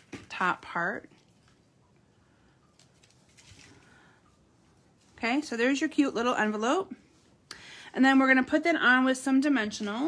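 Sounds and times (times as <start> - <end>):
faint paper rustling: 2.7 - 5.5.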